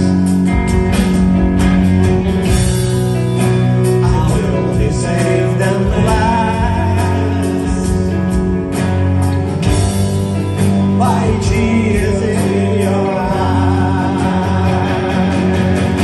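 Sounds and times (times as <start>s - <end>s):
bass guitar: 0.0s - 16.0s
electric guitars: 0.0s - 16.0s
percussion: 0.0s - 16.0s.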